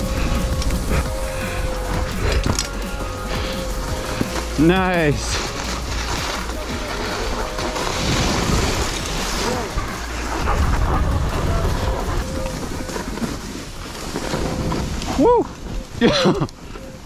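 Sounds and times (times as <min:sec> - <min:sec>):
skis hissing through snow: 0:00.0 - 0:17.0
wind buffeting microphone: 0:05.9 - 0:17.0.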